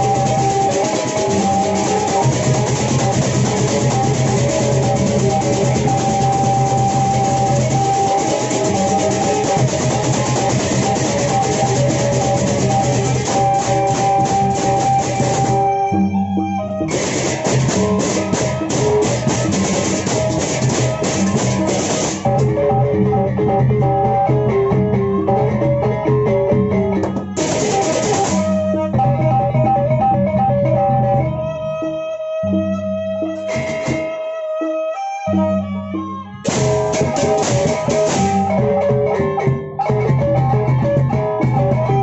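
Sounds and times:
barrel drums: 0:00.0 - 0:31.6, 0:33.3 - 0:34.4, 0:36.4 - 0:42.0
clashing cymbals: 0:27.4 - 0:28.6.

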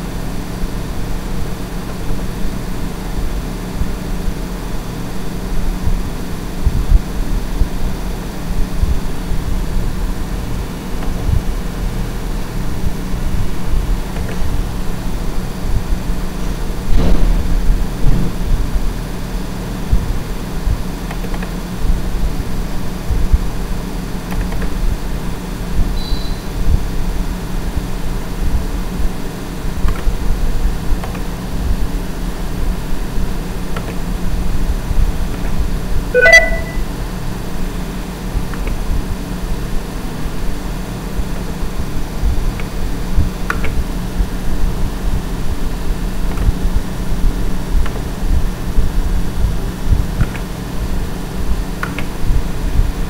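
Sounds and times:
short pitched chirp: 0:36.2 - 0:36.9.

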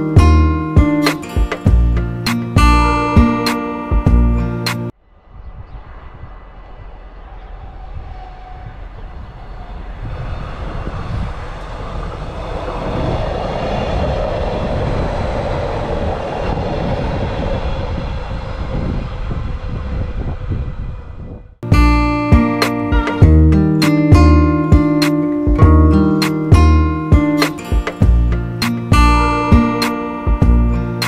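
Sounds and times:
diesel train passing: 0:00.0 - 0:31.0.

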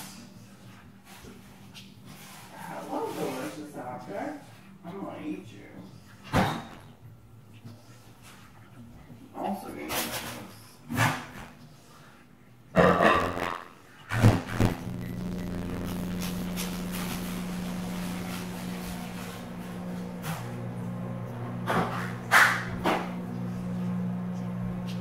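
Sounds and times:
low electric appliance hum: 0:00.0 - 0:25.0
dog barking and growling: 0:12.8 - 0:13.7.

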